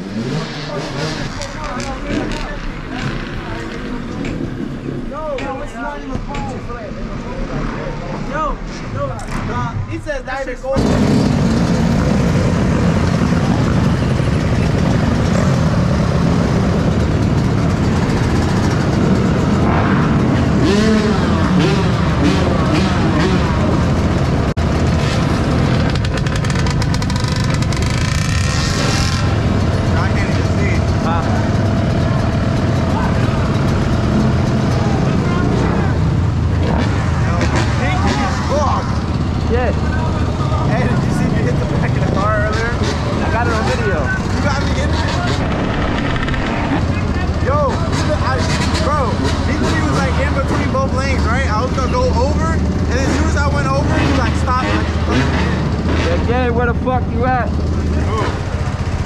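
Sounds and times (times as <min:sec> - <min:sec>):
dirt bike engines idling: 0:00.0 - 0:59.0
indistinct voices: 0:00.0 - 0:59.0.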